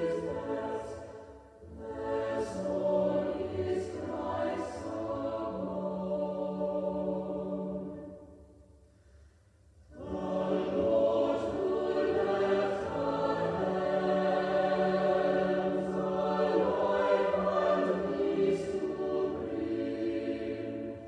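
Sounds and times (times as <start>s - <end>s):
choir singing a hymn: 0.0s - 8.5s, 9.9s - 21.0s.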